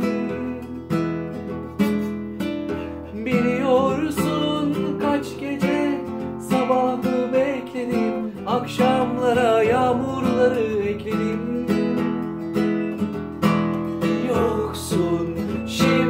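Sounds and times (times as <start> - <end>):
classical guitar strumming chords: 0.0 - 16.0.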